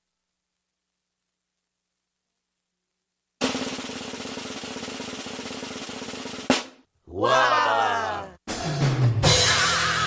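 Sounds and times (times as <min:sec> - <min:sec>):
snare drum roll: 0:03.4 - 0:06.8.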